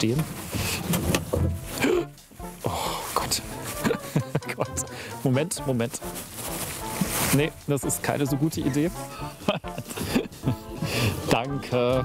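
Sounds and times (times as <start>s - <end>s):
background music: 0.0s - 12.0s
man's wordless vocal sounds: 1.8s - 5.4s, 10.7s - 12.0s.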